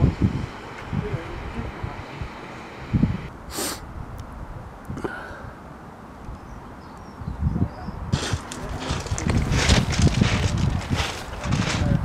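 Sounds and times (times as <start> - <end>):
wind rumbling on microphone: 0.0 - 12.0
footsteps on sand: 8.2 - 12.0.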